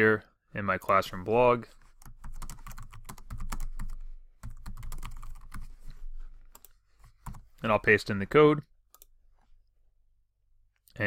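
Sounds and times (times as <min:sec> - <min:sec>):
typing on computer keyboard: 0:02.0 - 0:05.7.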